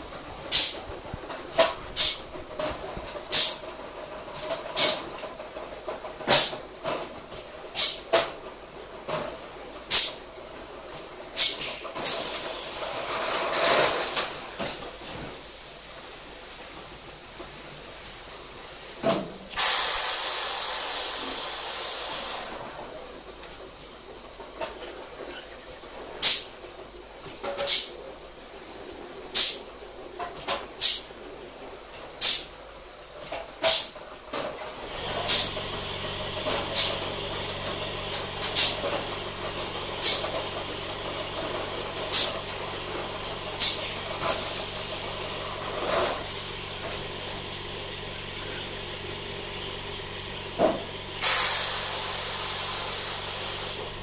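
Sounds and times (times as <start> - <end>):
compressed air hiss: 0.5 - 0.8, 2.0 - 2.3, 3.3 - 3.6, 7.8 - 8.0, 9.9 - 10.2, 11.4 - 13.2, 19.5 - 22.8, 26.2 - 26.5, 27.7 - 27.9, 29.4 - 29.7, 30.8 - 31.1, 32.2 - 32.5, 35.2 - 36.0, 36.7 - 37.0, 38.6 - 38.8, 40.0 - 40.3, 42.1 - 42.4, 43.6 - 47.4, 51.2 - 54.0
steady motor hum: 34.8 - 54.0.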